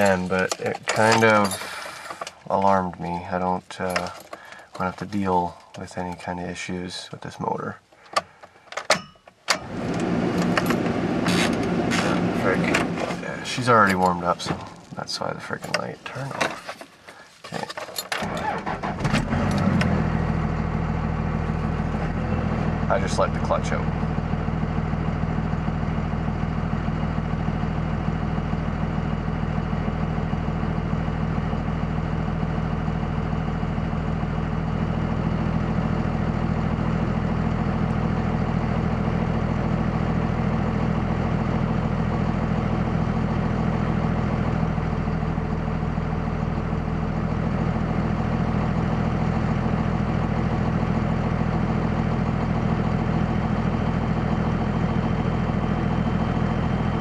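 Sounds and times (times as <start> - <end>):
diesel engine idling: 0.0 - 8.7, 9.3 - 16.3, 18.2 - 57.0.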